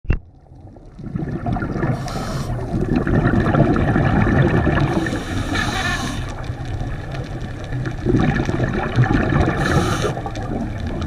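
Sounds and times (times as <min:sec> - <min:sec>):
muffled underwater rumbling: 0:00.1 - 0:11.0.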